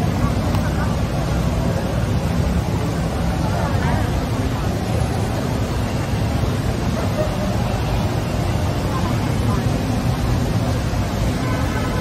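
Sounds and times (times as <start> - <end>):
steady low street rumble: 0.0 - 12.0
voices of passers-by: 0.0 - 12.0.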